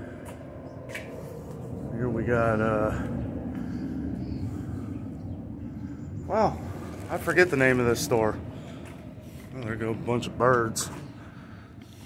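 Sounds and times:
distant jet aircraft rumble: 0.0 - 12.0.

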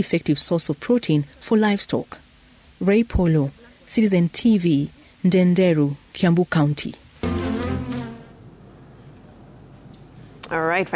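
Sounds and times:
buzzing drone: 7.2 - 8.4.

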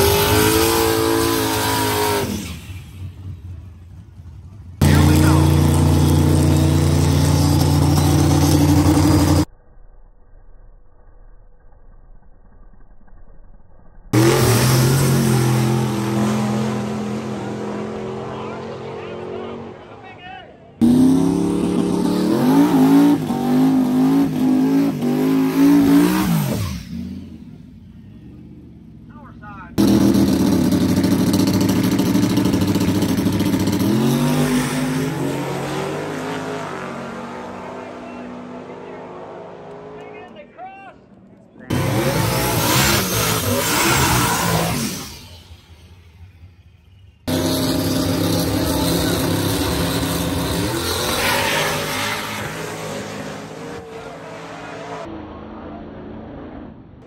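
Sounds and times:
car engine revving: 0.0 - 9.5, 14.1 - 20.1, 20.8 - 40.3, 41.6 - 57.0
drag race cars launching: 0.0 - 9.5, 14.1 - 57.0.

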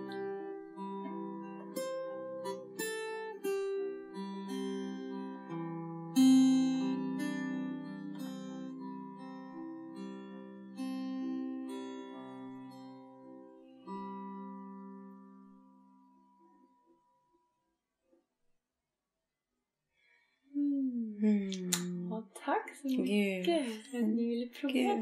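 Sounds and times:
slow plucked string instrument: 0.0 - 17.1, 20.6 - 22.2.

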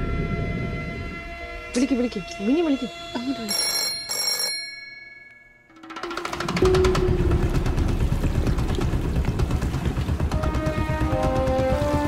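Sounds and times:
old telephone bell ringing: 3.3 - 6.5
loud dense soundtrack music: 6.2 - 12.0.

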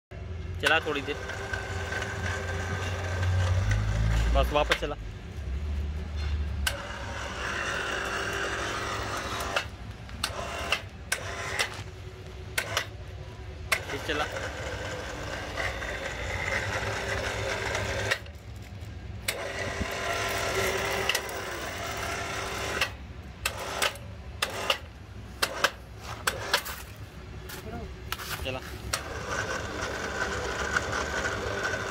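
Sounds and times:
electric winch running: 0.5 - 4.9, 6.2 - 18.6, 19.2 - 27.0, 28.8 - 31.9.

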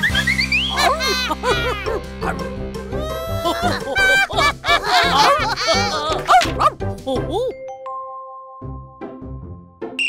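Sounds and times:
upbeat children's music: 0.0 - 7.6
cartoon voices cheering: 0.6 - 2.0, 3.0 - 7.3.

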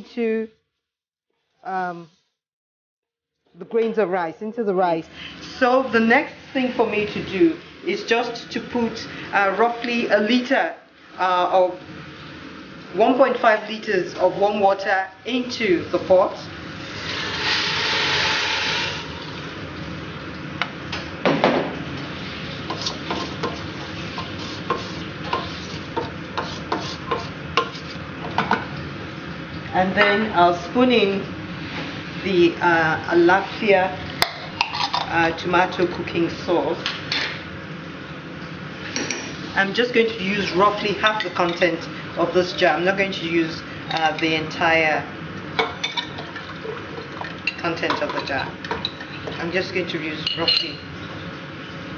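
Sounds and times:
pot hissing and bubbling: 15.6 - 20.2, 21.8 - 28.2
water pouring into pot: 16.8 - 19.9, 46.0 - 47.6
metal spoon clinking on jar: 50.3 - 50.8.

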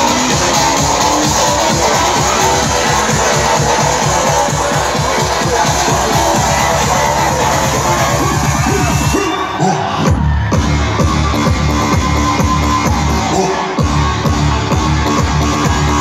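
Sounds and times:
crowd noise: 0.0 - 16.0
dance music with thumping beat: 0.0 - 16.0.

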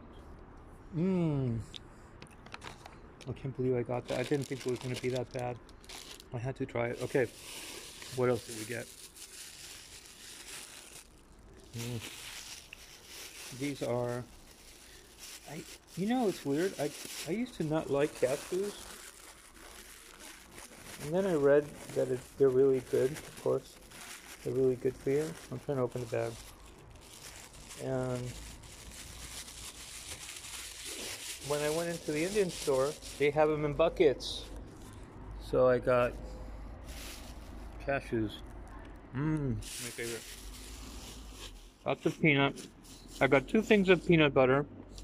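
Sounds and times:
plastic bag rustling: 3.9 - 35.0, 36.8 - 37.8, 39.6 - 43.4.

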